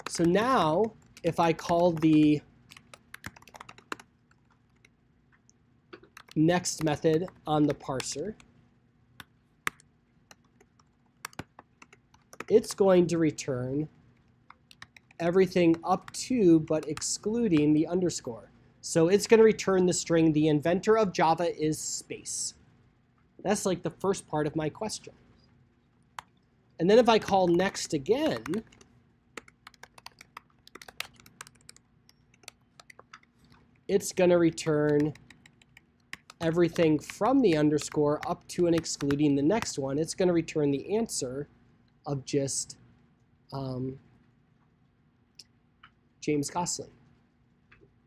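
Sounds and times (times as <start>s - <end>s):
keyboard typing: 0.0s - 8.6s, 9.2s - 13.2s, 14.1s - 18.2s, 26.1s - 40.1s.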